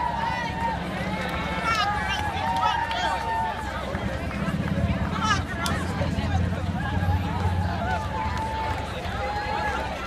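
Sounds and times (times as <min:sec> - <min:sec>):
crowd footsteps on asphalt: 0:00.0 - 0:10.0
indistinct chatter: 0:00.0 - 0:10.0.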